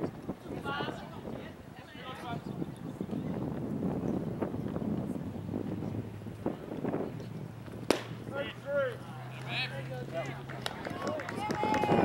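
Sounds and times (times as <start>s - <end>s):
long drawn-out yell: 11.1s - 12.0s.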